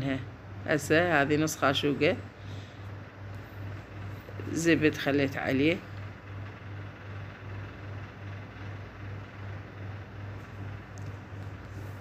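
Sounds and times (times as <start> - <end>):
throbbing machine hum: 2.2 - 12.0.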